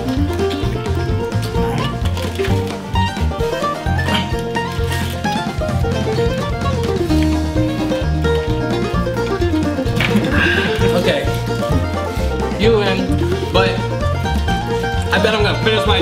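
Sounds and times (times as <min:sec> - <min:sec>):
banjo-like plucked melody: 0:00.0 - 0:16.0
pulsing bass line: 0:00.0 - 0:16.0.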